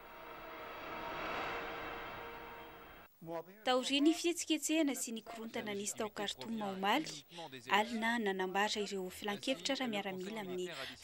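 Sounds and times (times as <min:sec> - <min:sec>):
noisy whoosh: 0:00.0 - 0:03.1
faint steady tones: 0:00.0 - 0:03.2.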